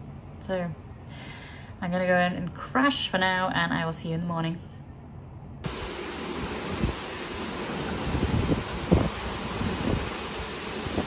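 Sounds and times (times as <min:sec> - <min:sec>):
ocean surf breaking: 0:05.7 - 0:11.0
wind blowing over microphone: 0:05.7 - 0:11.0.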